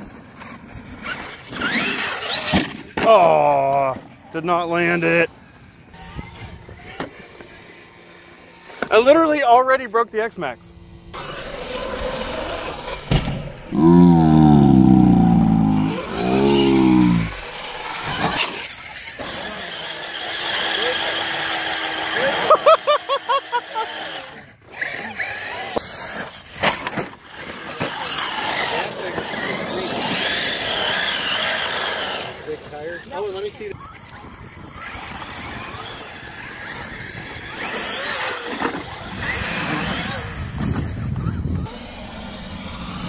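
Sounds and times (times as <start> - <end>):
electric rc car motors whining: 0.0 - 43.0.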